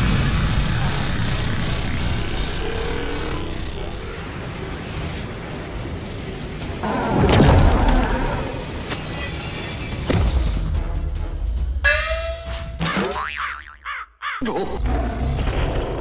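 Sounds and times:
music: 4.5 - 13.1.

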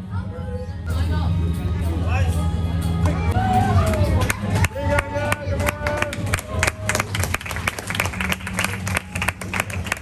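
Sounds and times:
audience clapping: 3.9 - 10.0.

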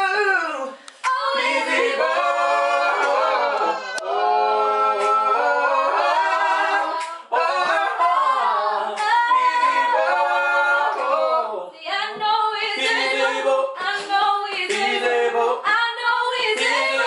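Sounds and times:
unaccompanied gospel singing: 0.0 - 17.0.

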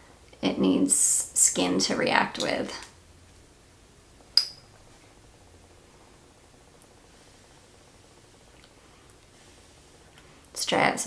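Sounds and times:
glass vial clink: 4.4 - 4.7.

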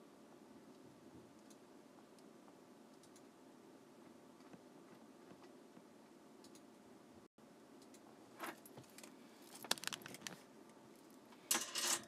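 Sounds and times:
keyboard and mouse clicks: 2.9 - 3.4, 6.4 - 6.7.

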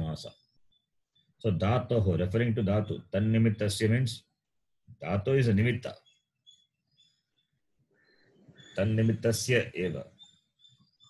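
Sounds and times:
faint high-pitched chirps: 0.0 - 4.4, 5.0 - 11.0.

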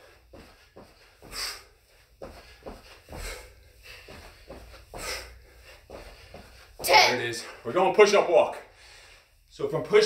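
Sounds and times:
feet thudding on carpet: 0.0 - 7.1.

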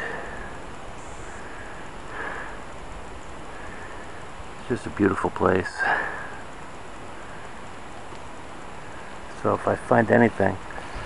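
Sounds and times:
outdoor background hiss: 0.0 - 11.0.

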